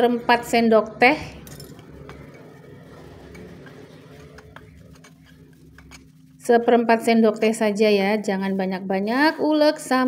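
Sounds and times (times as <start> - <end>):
stone pestle grinding nuts: 1.7 - 6.8.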